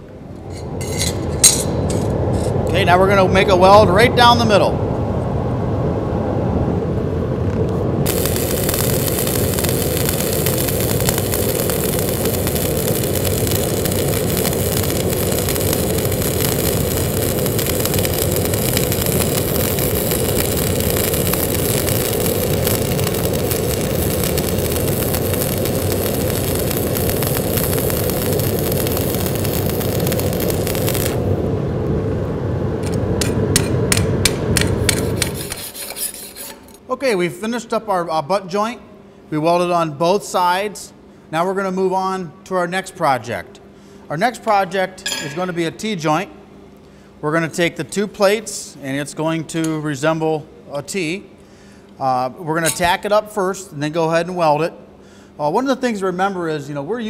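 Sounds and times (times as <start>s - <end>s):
steady low rush: 0.0s - 35.5s
welding arc crackling: 8.0s - 31.5s, 32.8s - 35.8s.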